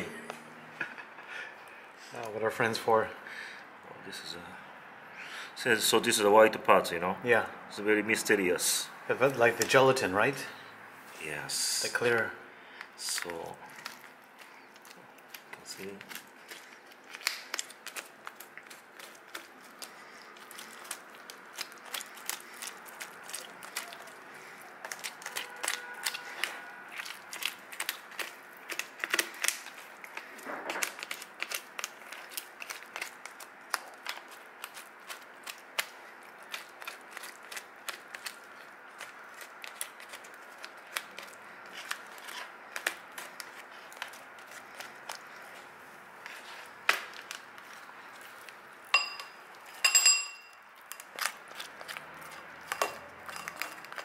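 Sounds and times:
spoon clinking on hard surface: 49.0s - 50.6s
metal spoon scraping shell: 52.4s - 54.0s.

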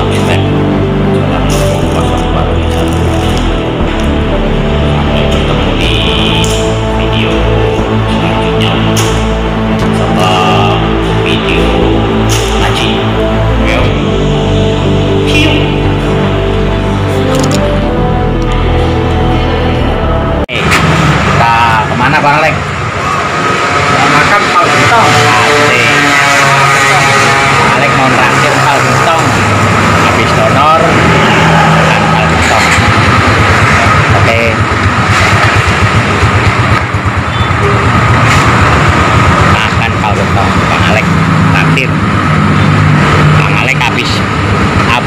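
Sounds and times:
man talking: 0.0s - 2.9s, 4.8s - 9.1s, 9.8s - 14.2s, 20.5s - 22.6s, 23.9s - 29.4s, 30.0s - 32.9s, 33.7s - 34.7s, 39.5s - 42.0s, 43.4s - 45.0s
man's voice: 0.0s - 16.3s, 23.9s - 33.0s, 39.5s - 42.0s, 43.4s - 45.0s
vehicle engine running: 0.0s - 45.0s.

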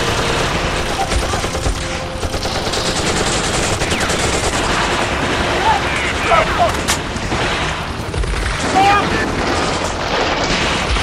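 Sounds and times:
rapid automatic rifle fire: 0.0s - 11.0s.

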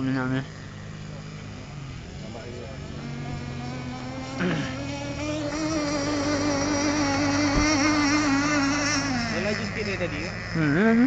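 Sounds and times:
model boat engine whining: 0.0s - 11.0s.

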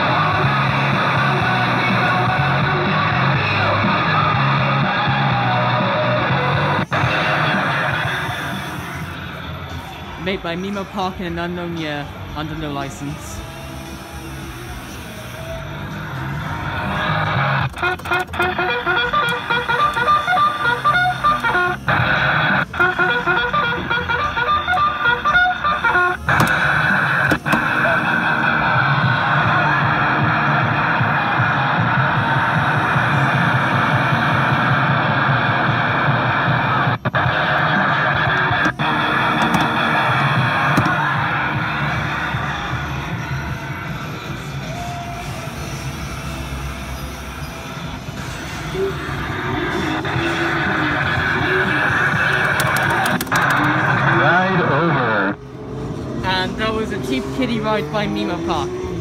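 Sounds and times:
kiddie ride music through speaker: 0.0s - 55.5s.

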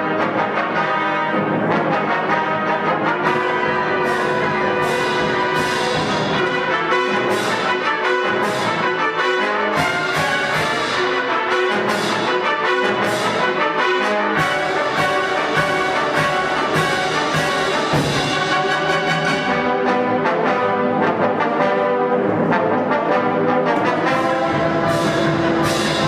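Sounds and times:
concert band playing: 0.0s - 26.0s.

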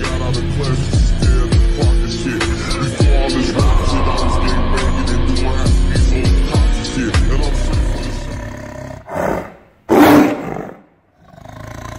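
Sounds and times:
tiger roaring: 7.5s - 11.9s.

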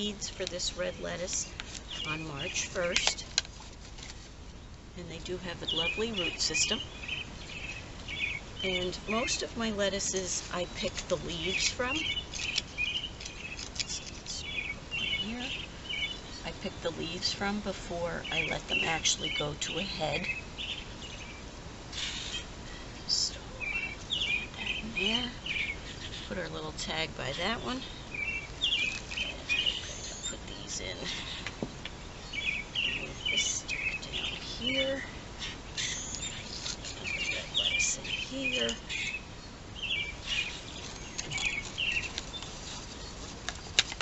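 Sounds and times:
small birds chirping: 0.0s - 3.4s, 4.0s - 44.0s.

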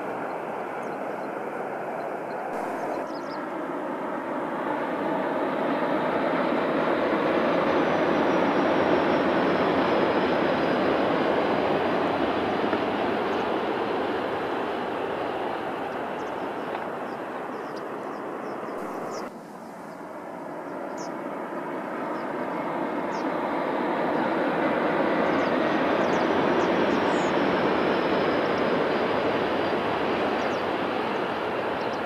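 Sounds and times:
high-speed train passing: 0.0s - 32.0s
faint high falling whine: 2.5s - 3.5s.

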